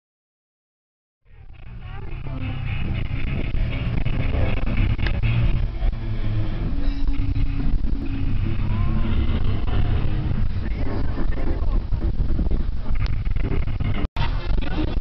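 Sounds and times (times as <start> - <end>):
faint crowd: 1.3 - 15.0
wind buffeting microphone: 1.4 - 15.0.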